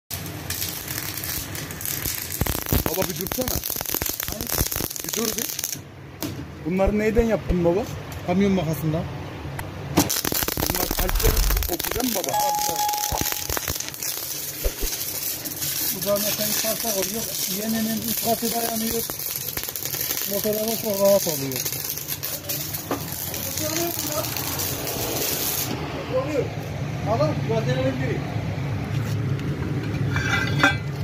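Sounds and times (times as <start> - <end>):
welding arc crackling: 0.1 - 5.8, 10.0 - 26.7
low hum: 10.7 - 13.8.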